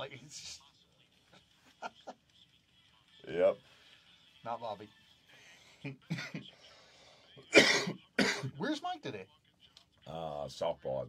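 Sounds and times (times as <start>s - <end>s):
man laughing: 5.8s - 6.4s
man coughing: 6.1s - 6.4s, 7.5s - 8.6s.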